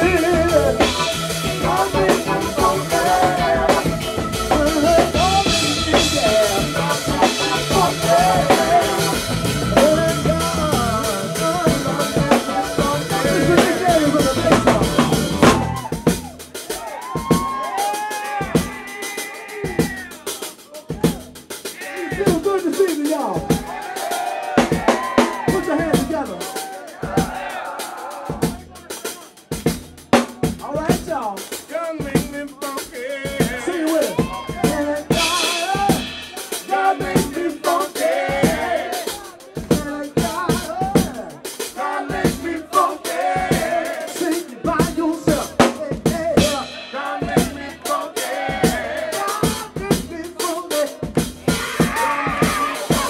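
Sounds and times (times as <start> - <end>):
drum kit hits: 0.0 - 27.5, 28.3 - 53.0
funk band playing: 0.0 - 53.0.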